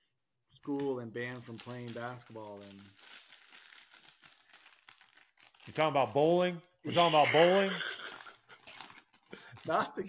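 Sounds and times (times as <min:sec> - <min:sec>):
trading cards rustling and clicking: 0:00.7 - 0:05.7, 0:07.0 - 0:10.0.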